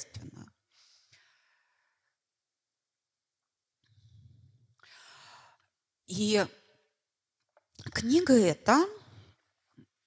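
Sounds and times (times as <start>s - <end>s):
faint breath into microphone: 3.9s - 5.7s.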